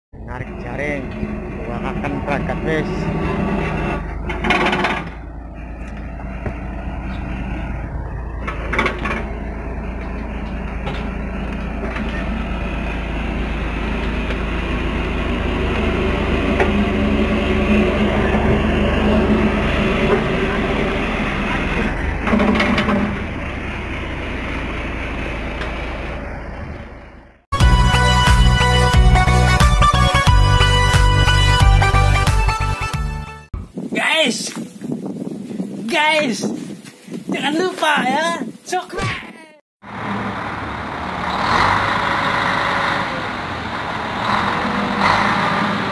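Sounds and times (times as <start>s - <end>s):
machinery engine droning: 0.2s - 32.2s, 39.8s - 45.9s
electronic music: 27.6s - 33.5s.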